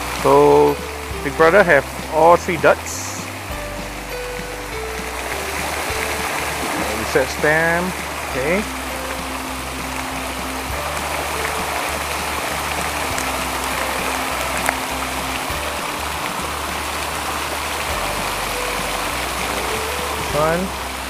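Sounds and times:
quiet background music: 0:00.0 - 0:21.0
water pouring down a wall: 0:00.0 - 0:21.0.

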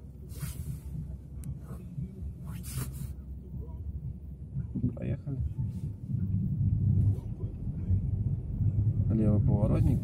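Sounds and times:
moving car rumble: 0:00.0 - 0:10.0.

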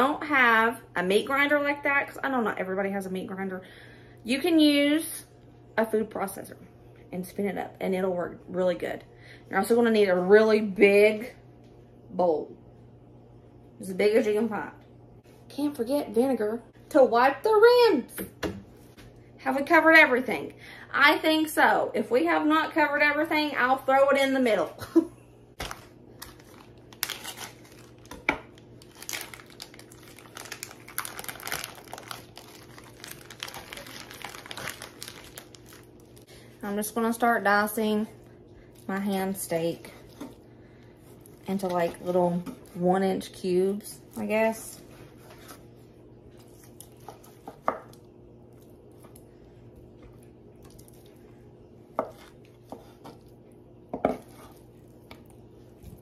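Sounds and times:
faint steady hum: 0:00.0 - 0:56.0
plastic packaging crinkling and tearing: 0:25.6 - 0:36.2.

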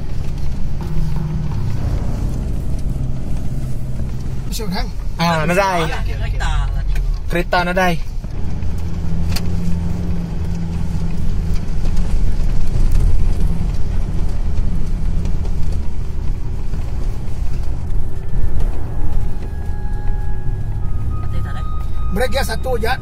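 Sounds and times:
car engine drone: 0:00.0 - 0:23.0
tyres rumbling on dirt road: 0:00.0 - 0:23.0.

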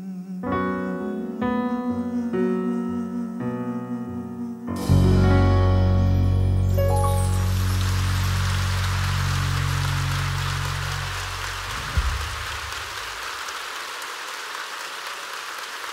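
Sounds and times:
band low chord: 0:04.7 - 0:12.8
audience applauding: 0:06.9 - 0:15.9
thump: 0:11.7 - 0:13.0.

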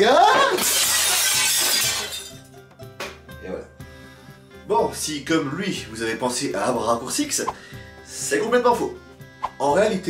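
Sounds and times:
glass shattering crash: 0:00.2 - 0:02.5.

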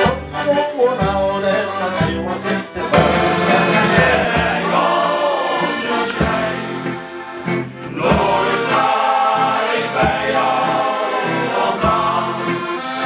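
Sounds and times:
accordion: 0:00.0 - 0:13.0
men's choir singing: 0:01.9 - 0:13.0
drum beat: 0:02.0 - 0:07.1, 0:07.9 - 0:12.4.

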